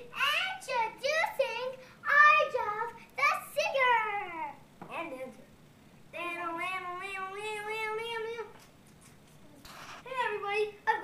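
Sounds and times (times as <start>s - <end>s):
child singing wordless phrases: 0.0s - 5.4s, 6.1s - 8.6s, 10.1s - 11.0s.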